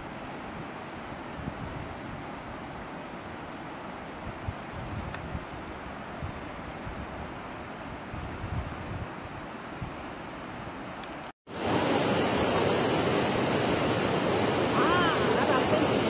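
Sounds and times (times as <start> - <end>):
wind: 0.0 - 16.0
wind rumble on microphone: 0.4 - 2.9, 4.2 - 10.8
river rushing over rocks: 11.5 - 16.0.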